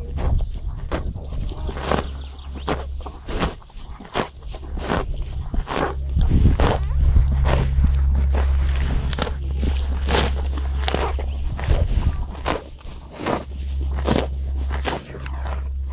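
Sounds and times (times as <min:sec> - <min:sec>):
cow tearing grass: 0:00.0 - 0:15.9
steady low rumble: 0:00.0 - 0:15.9.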